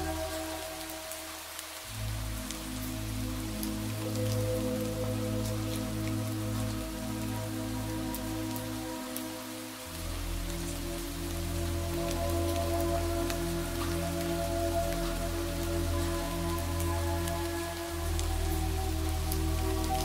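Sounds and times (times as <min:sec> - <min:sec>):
ambient meditation music: 0:00.0 - 0:20.0
steady rain: 0:00.0 - 0:20.0.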